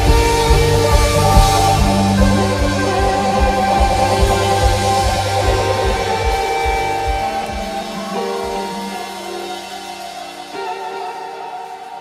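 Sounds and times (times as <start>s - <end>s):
kick drum and bass beat: 0.0s - 8.6s
electric guitars: 0.0s - 12.0s.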